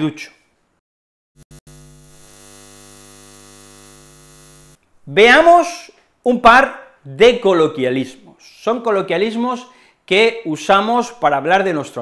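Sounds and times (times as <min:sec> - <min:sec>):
neon sign buzzing hum: 0:01.4 - 0:04.8.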